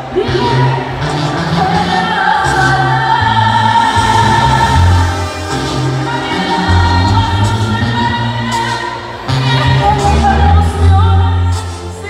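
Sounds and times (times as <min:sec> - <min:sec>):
band accompaniment: 0:00.0 - 0:12.0
steady bass line: 0:00.0 - 0:12.0.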